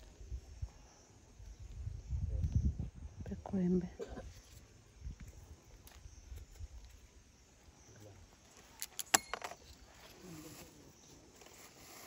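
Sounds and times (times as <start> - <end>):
metal tool clicking and clinking: 8.8 - 9.6.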